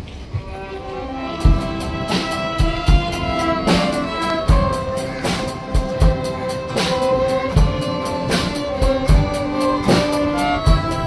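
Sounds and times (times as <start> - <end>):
violins playing held notes: 0.0 - 11.0
low beat: 0.4 - 11.0.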